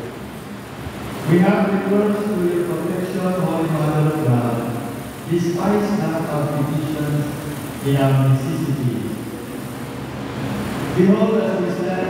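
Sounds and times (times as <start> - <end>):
large hall background noise: 0.0 - 12.0.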